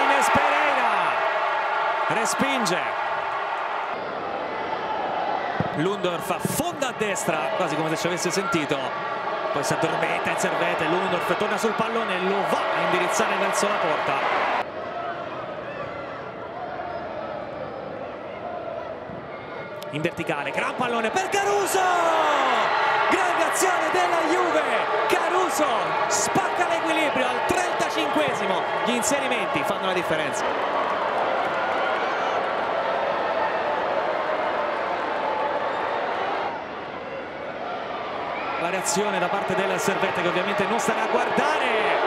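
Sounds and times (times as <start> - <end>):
commentator exclaiming: 20.6 - 29.4.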